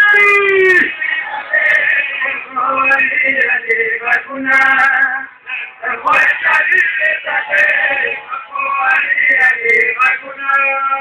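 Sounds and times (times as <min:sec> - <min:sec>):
man singing a devotional song: 0:00.0 - 0:11.0.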